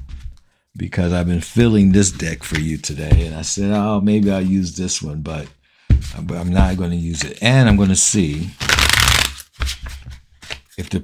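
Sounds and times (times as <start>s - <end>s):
cards riffling: 8.6s - 9.6s.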